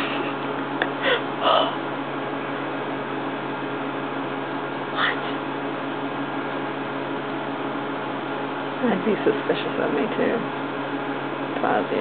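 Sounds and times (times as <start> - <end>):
aquarium equipment hum: 0.0 - 12.0.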